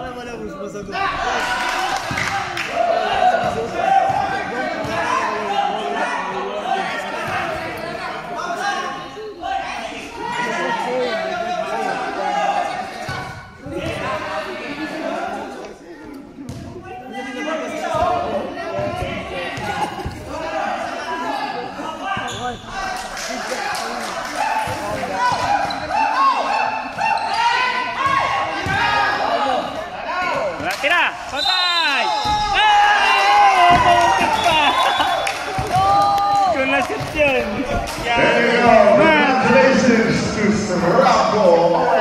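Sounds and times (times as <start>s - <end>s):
players and spectators shouting: 0.9s - 15.6s, 16.9s - 42.0s.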